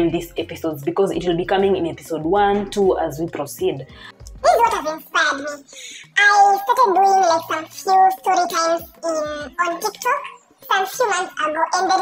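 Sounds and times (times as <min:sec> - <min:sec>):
woman talking: 0:00.0 - 0:05.1.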